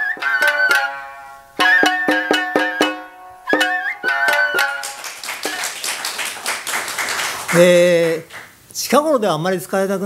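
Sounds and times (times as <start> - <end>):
plucked shamisen notes: 0.0 - 5.0
audience applause: 4.6 - 8.5.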